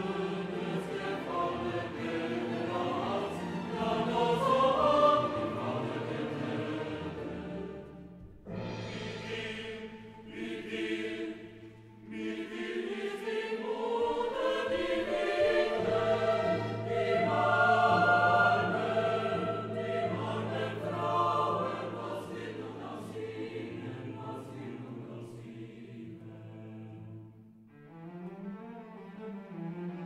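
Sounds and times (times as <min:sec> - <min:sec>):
choir singing: 0:00.0 - 0:28.0.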